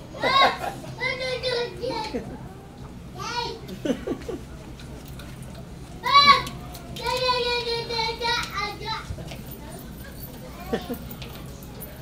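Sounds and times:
child calling: 0:06.0 - 0:09.0.

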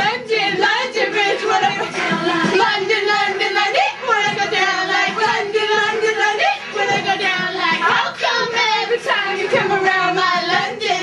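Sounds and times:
girls singing loudly: 0:00.0 - 0:11.0.

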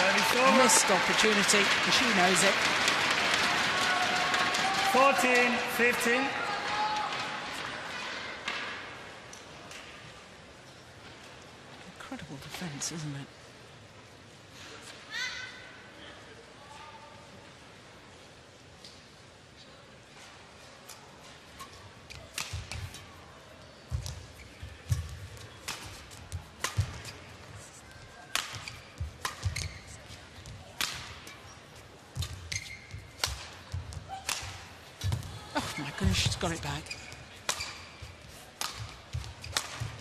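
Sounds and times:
racket striking shuttlecock: 0:24.9 - 0:27.2, 0:28.3 - 0:29.8, 0:33.2 - 0:35.3, 0:37.4 - 0:38.0, 0:38.6 - 0:40.0.

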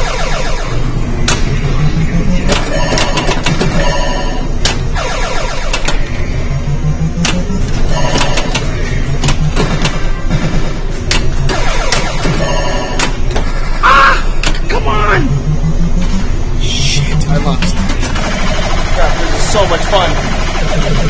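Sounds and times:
arcade din: 0:00.0 - 0:06.4, 0:07.2 - 0:21.0
electronic beeps and tones: 0:01.7 - 0:09.0, 0:11.6 - 0:13.8.

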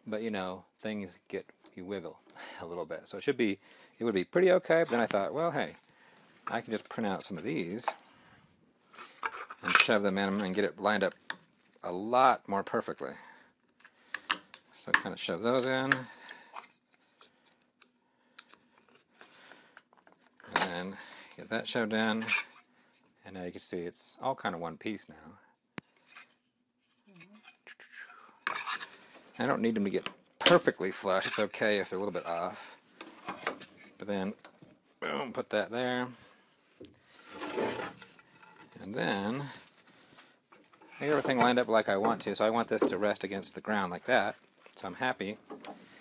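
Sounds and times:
soft rubbing of plastic pegs: 0:15.5 - 0:23.2, 0:36.5 - 0:45.8
wooden board scraping on wood: 0:37.2 - 0:38.8.

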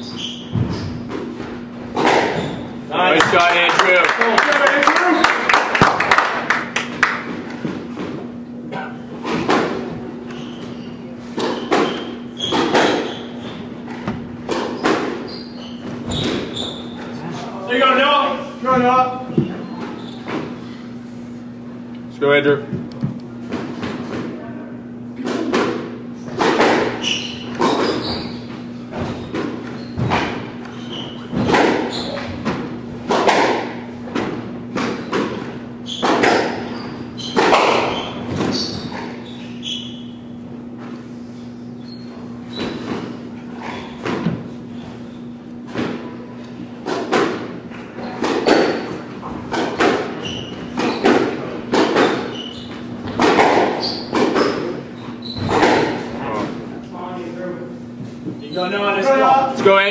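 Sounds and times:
squash ball cracking off racquets: 0:00.5 - 0:04.0, 0:09.2 - 0:10.4, 0:11.3 - 0:16.9, 0:25.2 - 0:39.2, 0:45.3 - 0:56.5.

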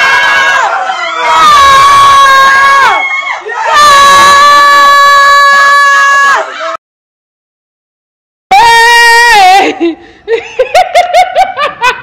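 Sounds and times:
person laughing rapidly: 0:09.6 - 0:12.0.

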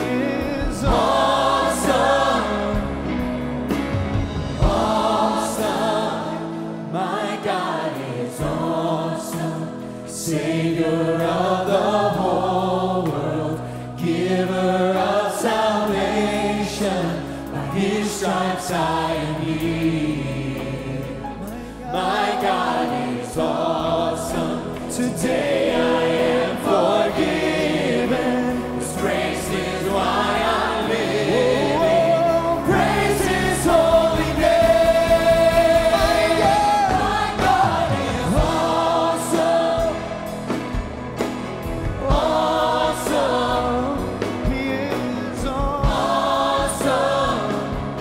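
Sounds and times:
male soloist singing: 0:00.0 - 0:03.2, 0:31.3 - 0:38.8, 0:42.0 - 0:47.6
choir singing gospel song: 0:00.0 - 0:48.0.

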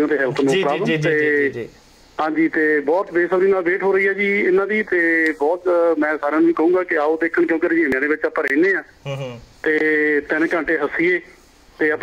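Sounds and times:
person talking: 0:00.0 - 0:01.7, 0:09.1 - 0:10.9.

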